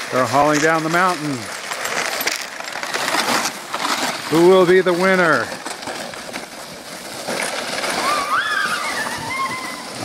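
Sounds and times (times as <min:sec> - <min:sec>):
plastic sleds scraping on icy snow: 0:00.0 - 0:10.0
high wavering squeal: 0:08.0 - 0:10.0.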